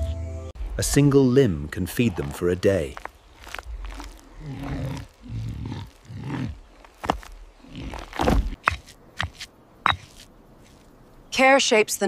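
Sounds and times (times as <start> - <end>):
low growling animal calls: 3.7 - 6.8.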